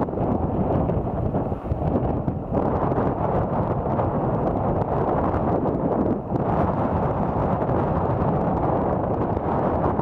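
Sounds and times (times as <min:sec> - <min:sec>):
gusty wind buffeting microphone: 0:00.0 - 0:10.0.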